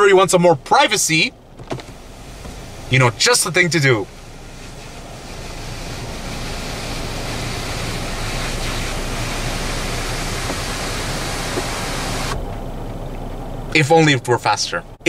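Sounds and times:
motorised sunshade whirring: 0:04.0 - 0:12.4.

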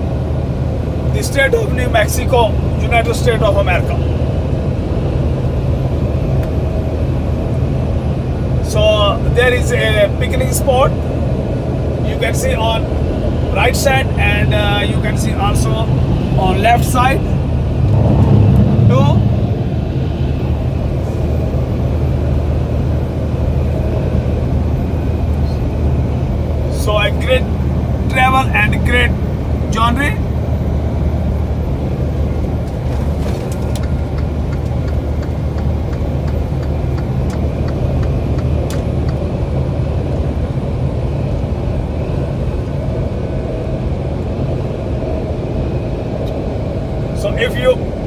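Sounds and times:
truck engine drone: 0:00.0 - 0:48.0.

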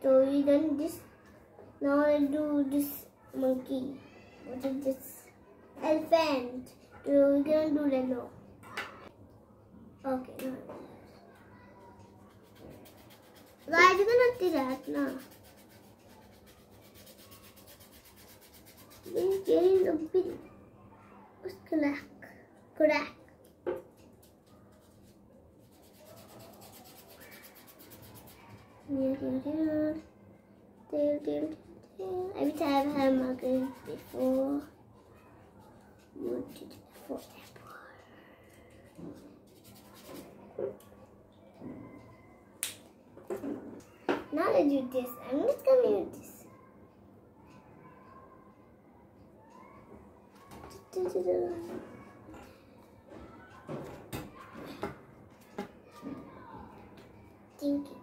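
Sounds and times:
marker rubbing on foam: 0:12.2 - 0:20.0, 0:24.2 - 0:28.8, 0:32.4 - 0:34.7, 0:36.2 - 0:37.6, 0:39.4 - 0:40.4
rubbing and tapping on foam: 0:12.2 - 0:20.4.

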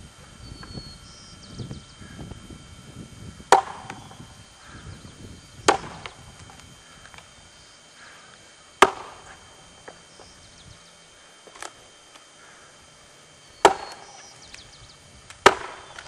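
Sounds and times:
axe chopping wood: 0:03.5 - 0:04.0, 0:05.7 - 0:06.2, 0:08.8 - 0:09.3, 0:13.6 - 0:14.2, 0:15.4 - 0:16.0.

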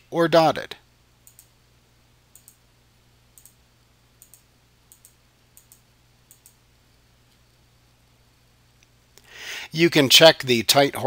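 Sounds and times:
faint low hum: 0:00.0 - 0:11.0
computer mouse clicks: 0:01.2 - 0:01.5, 0:02.3 - 0:02.6, 0:03.4 - 0:03.6, 0:04.2 - 0:06.6.

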